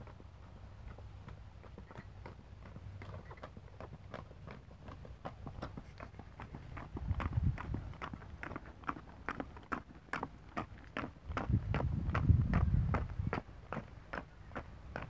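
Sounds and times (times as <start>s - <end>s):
horse hooves on dirt: 0.0s - 15.0s.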